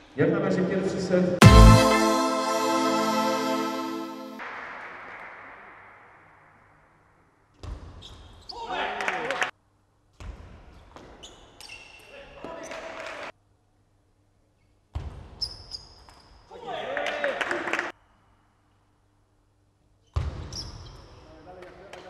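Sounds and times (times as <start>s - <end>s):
music: 1.4s - 4.4s.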